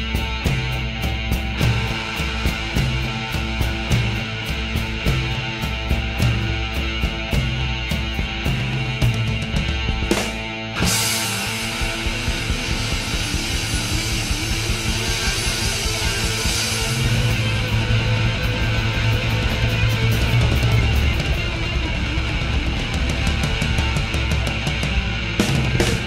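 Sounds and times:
alternative rock with electric guitar: 0.0 - 26.0
heavy bass: 0.0 - 26.0
fast cymbal strokes: 10.8 - 21.4.

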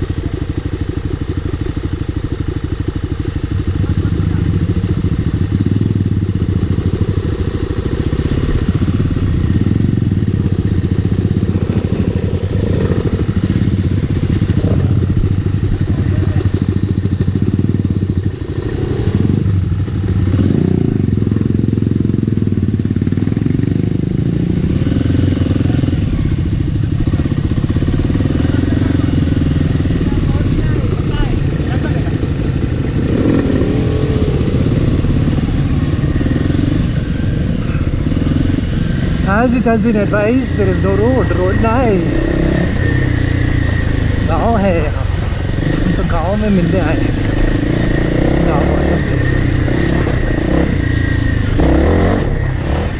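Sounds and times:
dirt bike engine running: 0.0 - 52.9.

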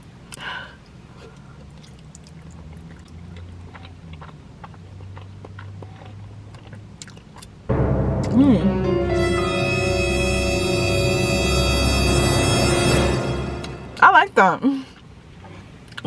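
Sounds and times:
wet mouth clicks and smacks: 1.6 - 7.6
loud dramatic music: 7.7 - 14.4.

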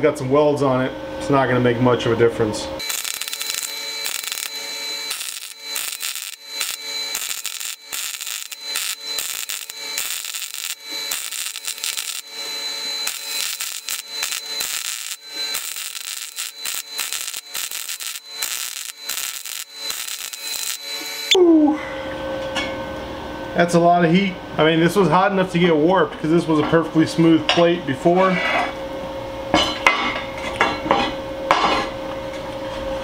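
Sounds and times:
welding arc crackling: 2.8 - 21.4.

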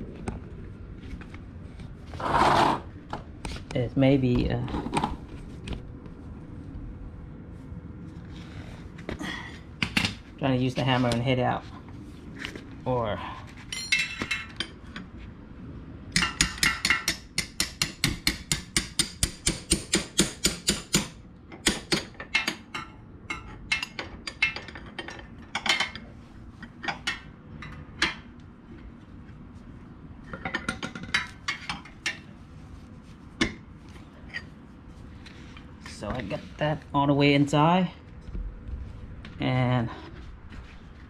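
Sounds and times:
hammer striking metal axle: 16.1 - 24.8.

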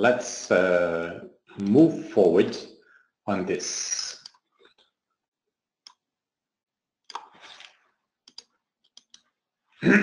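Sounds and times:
computer mouse clicks: 4.2 - 4.9, 7.0 - 9.3.

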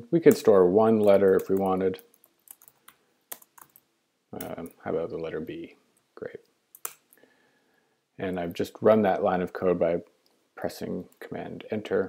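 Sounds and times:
keyboard typing: 0.3 - 3.8, 6.7 - 7.1.

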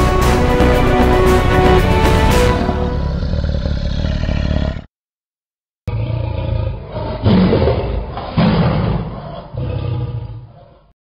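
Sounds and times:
tiger roar: 3.0 - 4.9, 5.9 - 11.0.

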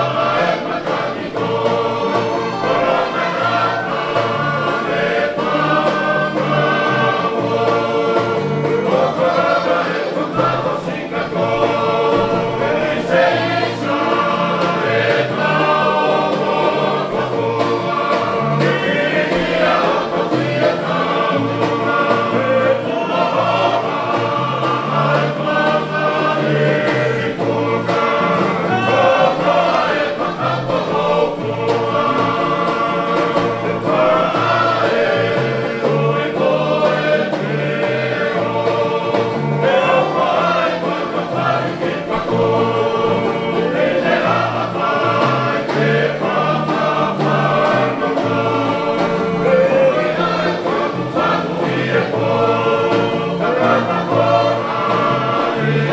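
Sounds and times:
men singing in chorus: 0.0 - 55.9
strummed guitars and ukuleles: 0.0 - 55.9.

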